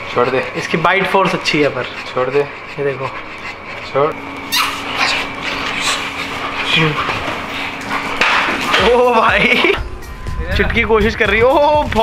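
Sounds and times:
dogs growling in tug play: 0:00.1 - 0:09.8.

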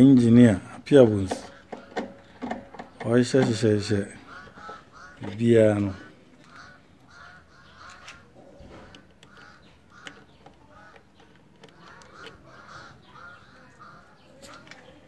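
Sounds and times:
harsh bird calls: 0:00.0 - 0:15.0
faint clicks: 0:08.8 - 0:13.2.

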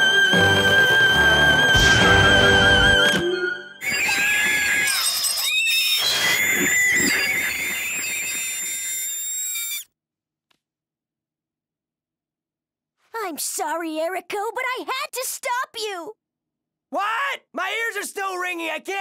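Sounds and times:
backing music: 0:00.0 - 0:03.8.

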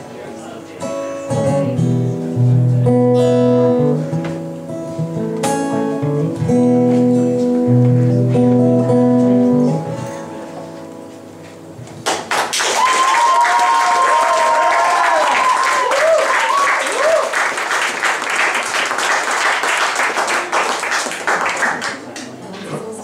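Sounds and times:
acoustic guitar notes: 0:00.0 - 0:12.0
audience applause: 0:12.0 - 0:22.2
people cheering: 0:12.4 - 0:20.7.

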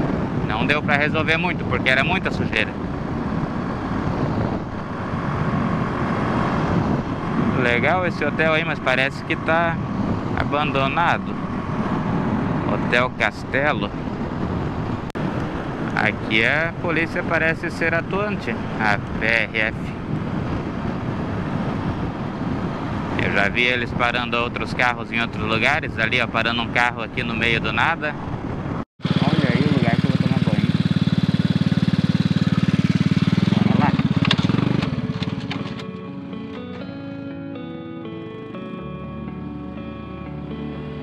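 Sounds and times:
motorcycle engine running: 0:00.0 - 0:23.8, 0:26.5 - 0:37.5
wind noise: 0:00.0 - 0:35.9.

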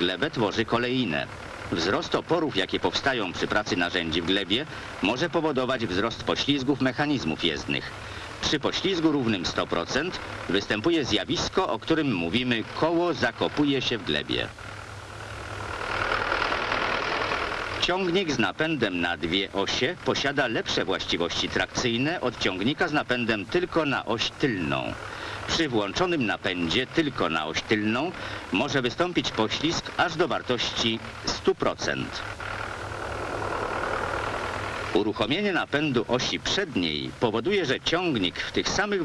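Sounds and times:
tractor engine running: 0:00.0 - 0:39.0.

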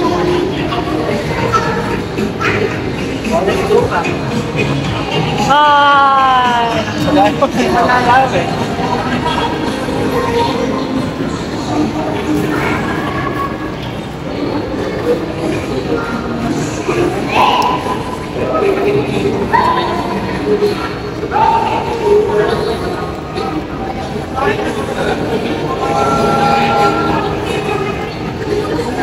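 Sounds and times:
ride cars rumbling on tiled floor: 0:00.0 - 0:29.0.

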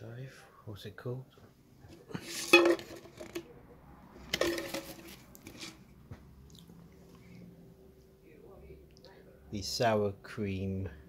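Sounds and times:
crockery clinking: 0:02.1 - 0:03.0.

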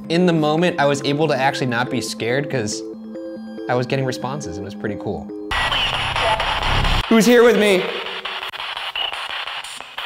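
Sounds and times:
radio static hiss: 0:05.5 - 0:10.0.

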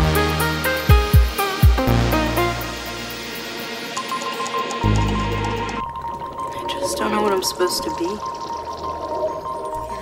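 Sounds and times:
steady high hum: 0:00.0 - 0:08.6.

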